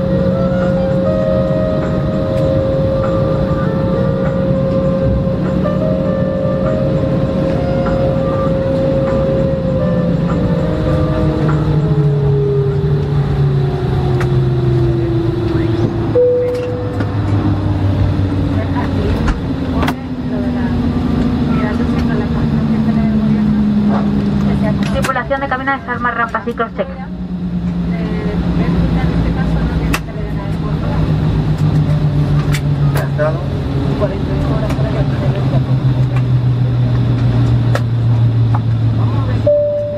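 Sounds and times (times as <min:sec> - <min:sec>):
jet engines humming in cabin: 0:00.0 - 0:39.9.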